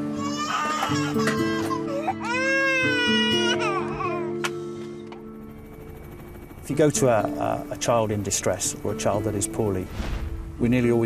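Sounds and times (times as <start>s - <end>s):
baby crying: 0.0s - 4.5s
background music: 0.0s - 11.0s.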